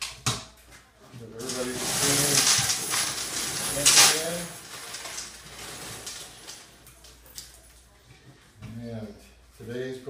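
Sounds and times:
paper tickets tumbling in drum: 1.4s - 6.8s.

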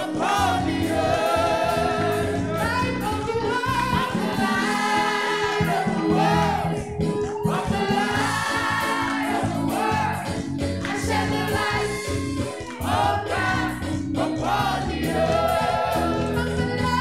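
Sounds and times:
choir singing in harmony: 0.0s - 17.0s
keyboard accompaniment: 0.0s - 17.0s.

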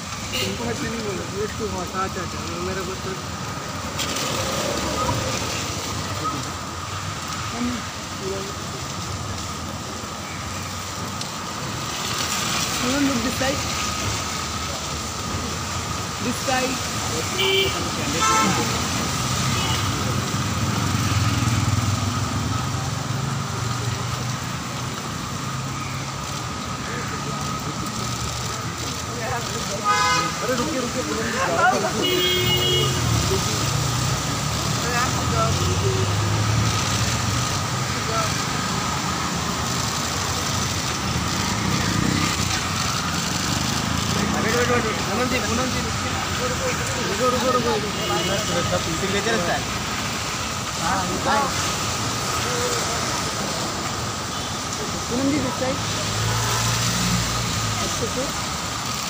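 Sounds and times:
rain hissing: 0.0s - 59.0s
road traffic on wet street: 0.0s - 59.0s.

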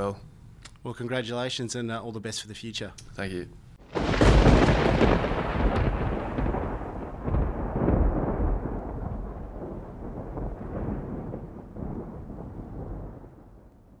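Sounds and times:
deep thunder-like rumble: 3.8s - 14.0s.

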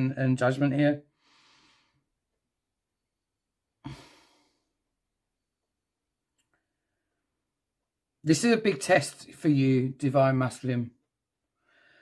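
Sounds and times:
person sighing: 3.8s - 4.7s.

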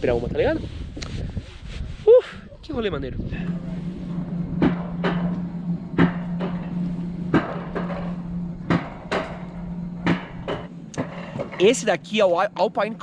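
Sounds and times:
wheels humming on metal rail: 3.1s - 13.0s
sharp knocks on track: 4.6s - 11.6s.

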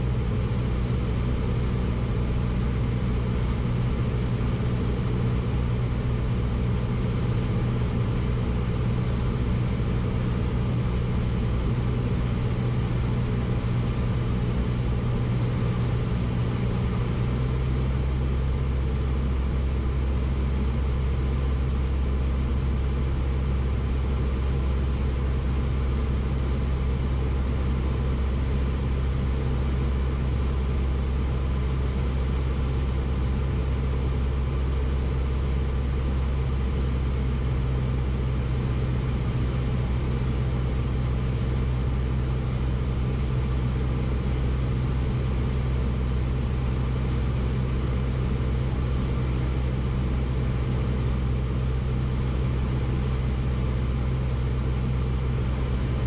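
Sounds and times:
propeller plane engine droning: 0.0s - 56.0s.

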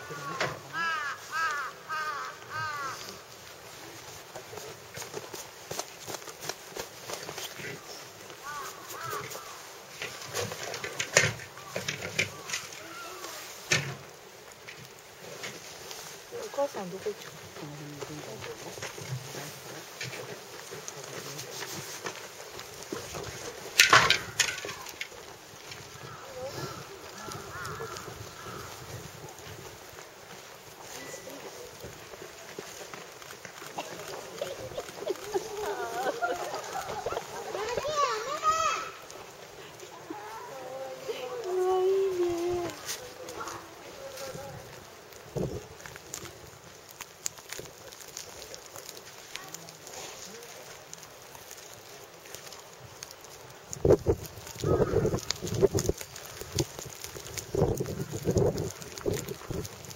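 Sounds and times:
bird calling: 0.0s - 3.3s, 7.8s - 13.7s.

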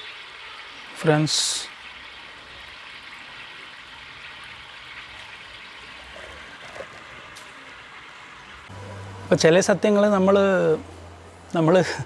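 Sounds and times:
water trickling into a tub: 0.0s - 8.7s.

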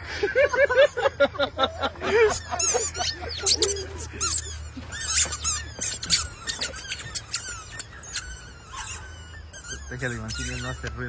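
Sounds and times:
rubber chicken toys squeaking: 2.2s - 11.0s.

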